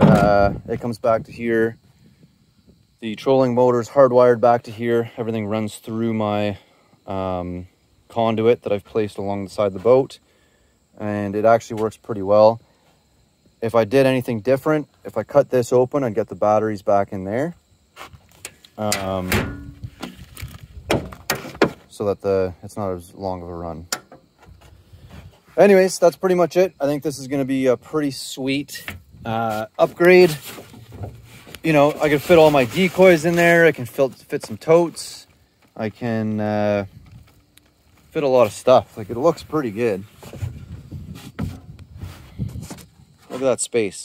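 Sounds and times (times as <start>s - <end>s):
knocks against aluminum boat: 20.9s - 21.8s.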